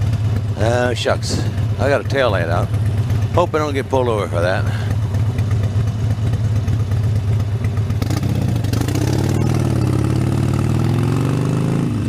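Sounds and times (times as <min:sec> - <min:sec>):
motorcycle engine rumbling: 0:00.0 - 0:12.0.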